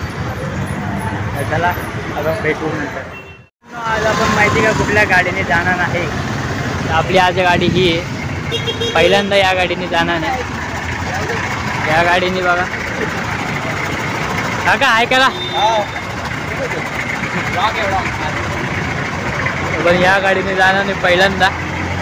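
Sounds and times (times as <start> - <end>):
vehicle engine idling: 3.7 - 22.0.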